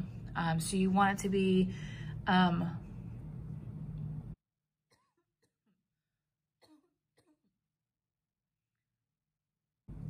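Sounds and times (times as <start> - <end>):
low hum: 0.0 - 4.4.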